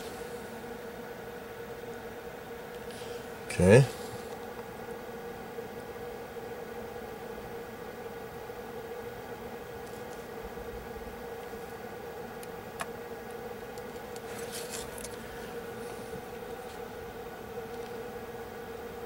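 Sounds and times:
steady low hum: 0.0 - 19.0
soft rustling: 14.0 - 16.9.

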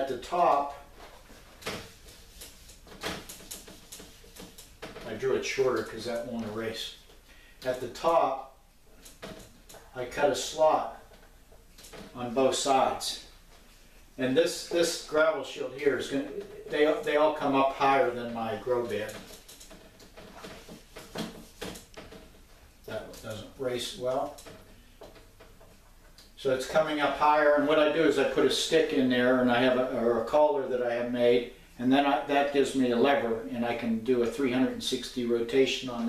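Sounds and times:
wiping strokes on whiteboard: 0.2 - 6.3
scrubbing on a whiteboard: 0.2 - 6.4, 16.1 - 22.5.

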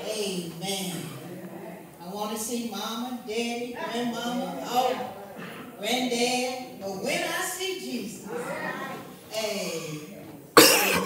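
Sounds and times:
loud cough into microphone: 10.6 - 11.0.

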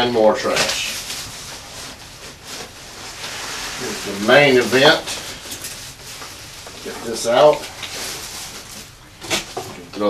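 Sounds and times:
packing material rustling: 0.3 - 9.9.

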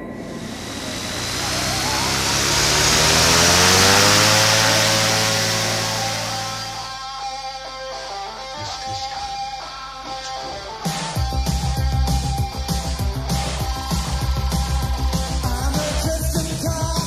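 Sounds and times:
light aircraft engine and propeller: 0.0 - 7.0.

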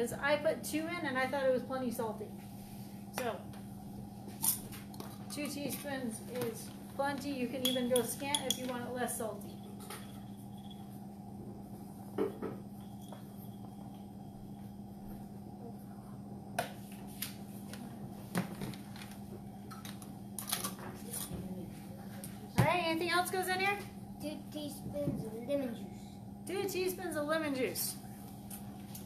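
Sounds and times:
low room hum: 0.0 - 29.0
utensils knocking and clinking: 4.4 - 10.9.

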